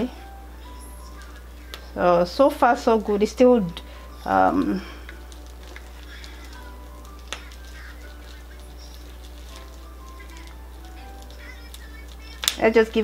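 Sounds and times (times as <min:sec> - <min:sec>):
low electrical hum: 0:00.0 - 0:13.0
quiet background music: 0:00.0 - 0:13.0.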